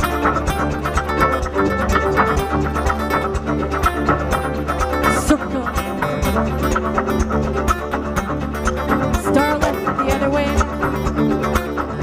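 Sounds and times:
live dance band music: 0:00.0 - 0:12.0.

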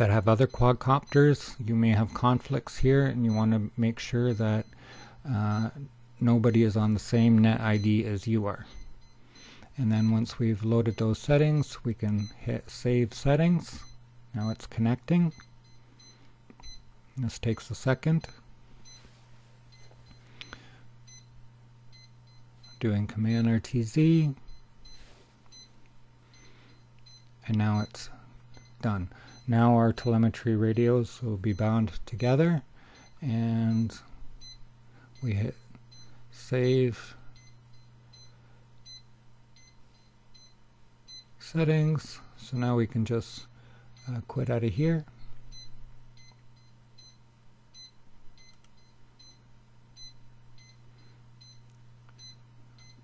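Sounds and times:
low electrical hum: 0:00.0 - 0:53.0.

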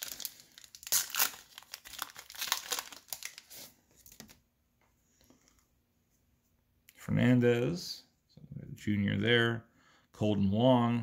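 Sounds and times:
wrapper tearing and crinkling: 0:00.0 - 0:04.3.

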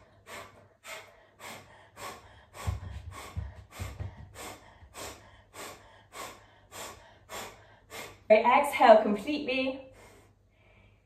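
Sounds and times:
low bumps: 0:02.5 - 0:05.0.

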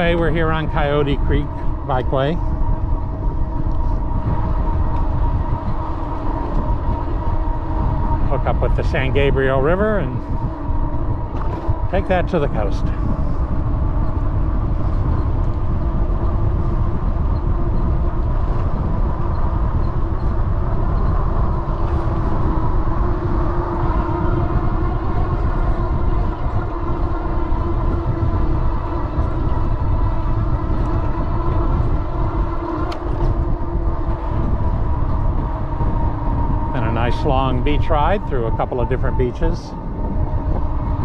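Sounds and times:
steady hum: 0:00.0 - 0:41.0
wind buffeting microphone: 0:00.0 - 0:41.0.

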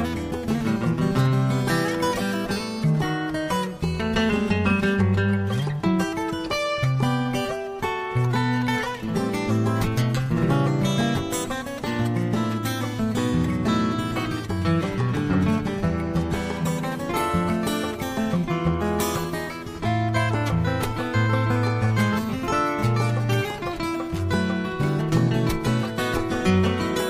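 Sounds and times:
plucked acoustic guitar: 0:00.0 - 0:27.0.

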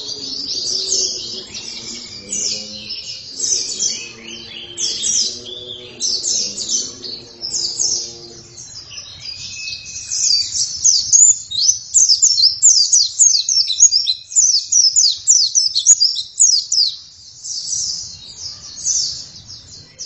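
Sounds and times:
bird twittering song: 0:00.0 - 0:20.0.

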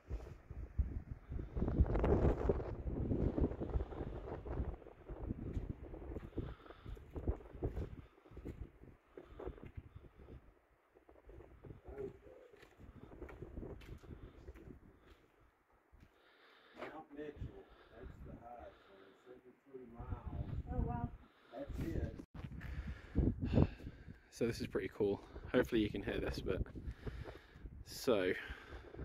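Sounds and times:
wind buffeting microphone: 0:00.0 - 0:15.2, 0:17.4 - 0:18.5, 0:20.0 - 0:29.0.

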